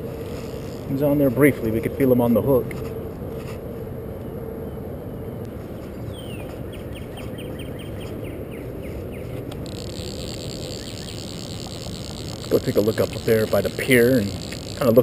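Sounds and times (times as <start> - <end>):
high insect buzz: 0.0 - 1.2, 9.3 - 15.0.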